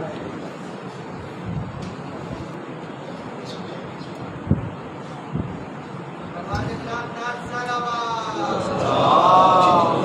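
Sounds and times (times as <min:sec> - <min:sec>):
hall room noise: 0:00.0 - 0:10.0.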